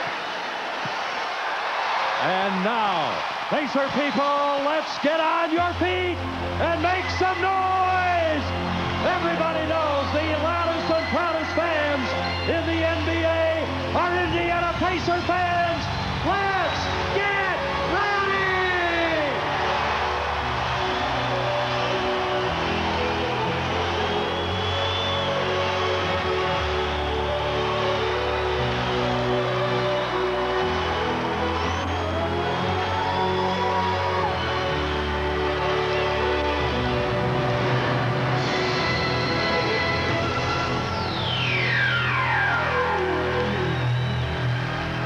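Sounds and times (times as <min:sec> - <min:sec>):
arena music over loudspeakers: 0:00.0 - 0:45.0
crowd cheering: 0:00.0 - 0:45.0.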